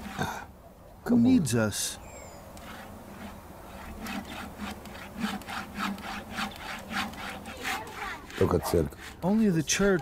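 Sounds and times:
hand saw cutting log: 0.0s - 0.5s, 2.6s - 10.0s.

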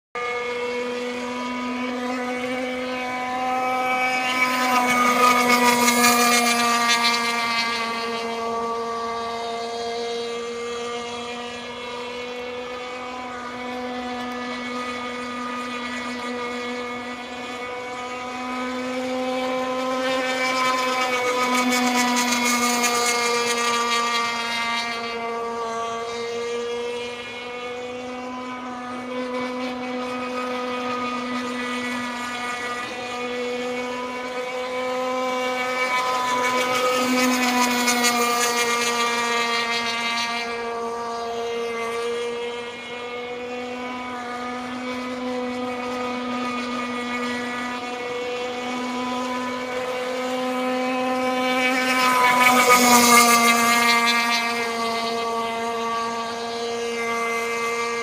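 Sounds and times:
boat engine buzzing: 0.0s - 58.0s.

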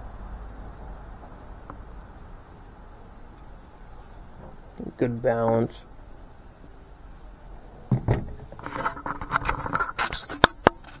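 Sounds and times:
scraping and rustling: 3.3s - 4.8s, 7.9s - 11.0s.

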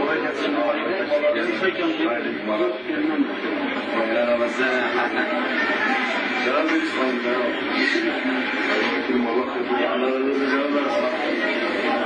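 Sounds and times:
man speaking on television: 0.0s - 12.0s.

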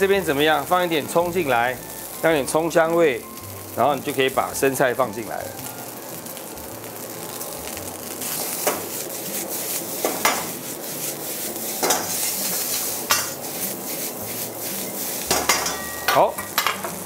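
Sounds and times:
rice sizzling in a wok: 0.0s - 17.0s
ladle stirring and tossing food: 7.3s - 17.0s.

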